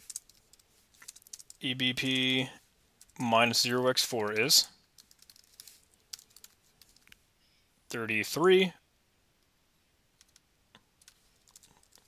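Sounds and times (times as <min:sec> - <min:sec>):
faint keyboard typing: 0:00.0 - 0:02.4, 0:04.1 - 0:07.2, 0:10.2 - 0:12.0.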